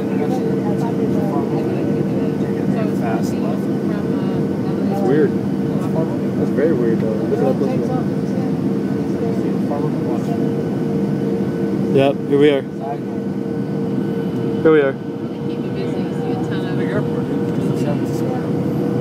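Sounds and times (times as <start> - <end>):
airplane cabin engine drone: 0.0 - 19.0.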